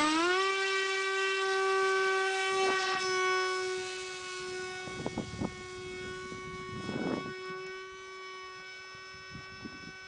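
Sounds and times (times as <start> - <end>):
electric motor whine: 0.0 - 10.0.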